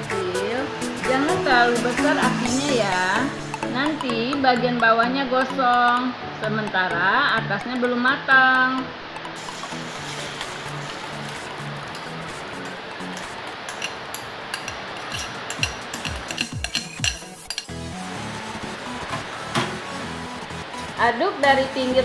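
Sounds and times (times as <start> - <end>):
background music: 0.0 - 22.0
batter sizzling in oil: 9.4 - 17.8
bowl and spoon clinking: 11.2 - 17.8.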